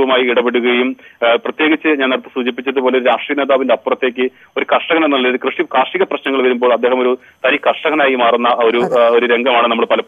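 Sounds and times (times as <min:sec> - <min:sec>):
man talking over a telephone: 0:07.5 - 0:10.0.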